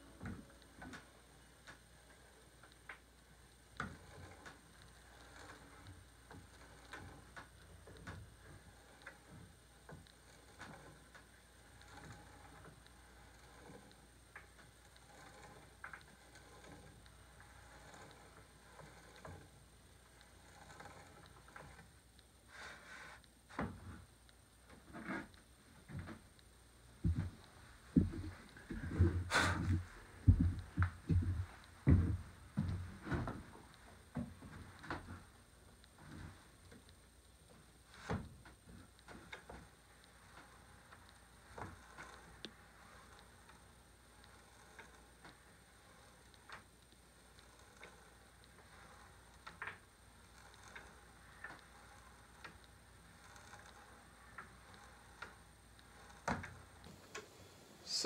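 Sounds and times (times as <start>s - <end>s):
faint regular ticking: 0.1s - 23.4s, 25.3s - 28.8s, 29.8s - 57.6s.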